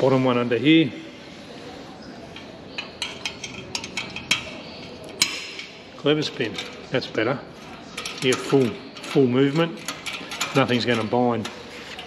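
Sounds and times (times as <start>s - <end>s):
light metallic clicks and clinks: 2.3s - 5.7s.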